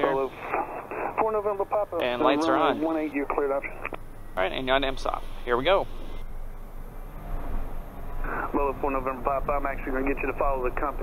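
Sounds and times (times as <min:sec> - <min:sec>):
turboprop engine droning: 0:00.0 - 0:11.0.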